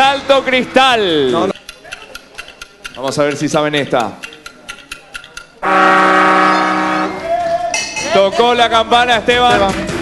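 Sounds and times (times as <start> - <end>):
clock ticking faintly: 1.5 - 5.6
loud brass-like horn blast: 5.6 - 7.2.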